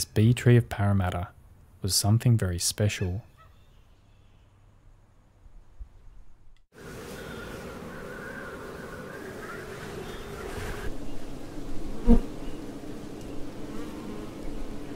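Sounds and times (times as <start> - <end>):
honeybees buzzing: 6.8 - 14.9.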